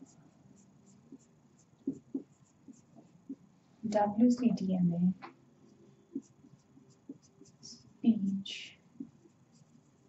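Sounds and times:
marker squeaking on whiteboard: 0:00.0 - 0:03.5, 0:05.9 - 0:07.9.

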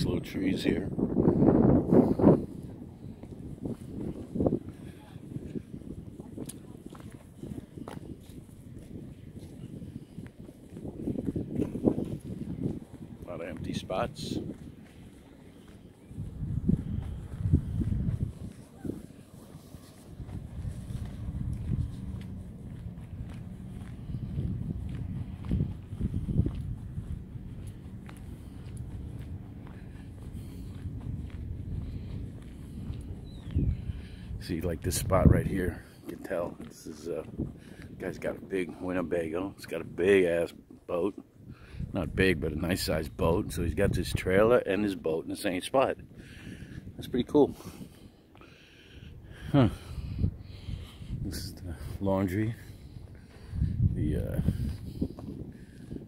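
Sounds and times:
wind buffeting microphone: 0:00.0 - 0:56.0
soft footfalls on pavement: 0:02.6 - 0:39.5, 0:50.6 - 0:56.0.

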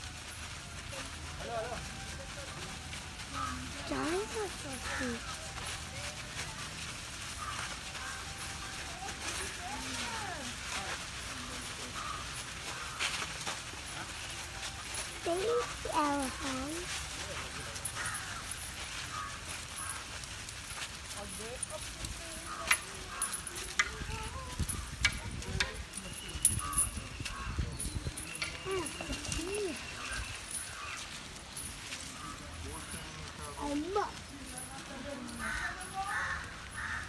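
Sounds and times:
outdoor background noise: 0:00.0 - 0:37.0.

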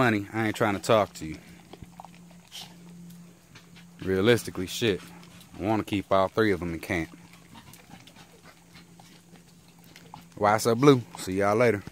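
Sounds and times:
faint steady hum: 0:00.0 - 0:11.9.

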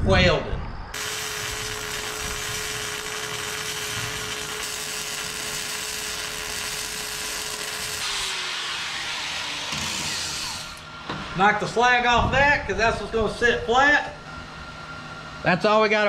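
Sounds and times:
steady whine: 0:00.0 - 0:16.0
welding arc sizzling crackle: 0:00.9 - 0:11.0.

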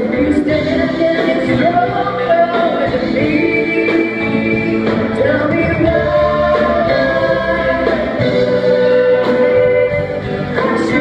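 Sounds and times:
live band playing slow song: 0:00.0 - 0:11.0
person singing: 0:00.0 - 0:11.0.

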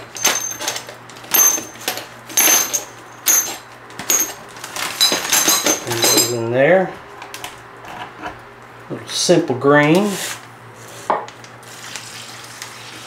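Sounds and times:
small metal parts clinking: 0:00.0 - 0:06.5.

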